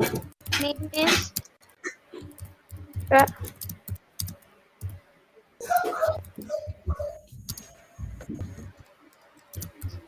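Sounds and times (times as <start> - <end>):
clicks and light taps: 0.0 - 5.0.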